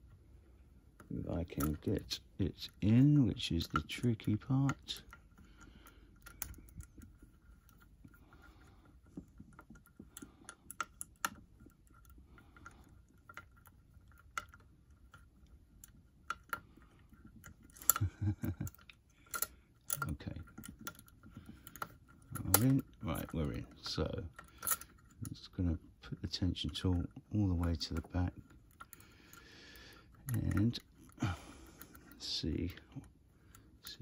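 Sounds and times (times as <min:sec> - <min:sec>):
metal pick clicking in lock: 0:17.6 - 0:25.2.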